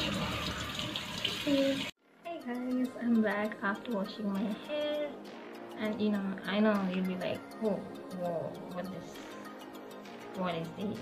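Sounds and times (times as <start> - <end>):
tap water running and splashing: 0.0 - 2.0
woman's voice: 1.5 - 9.4, 10.3 - 11.0.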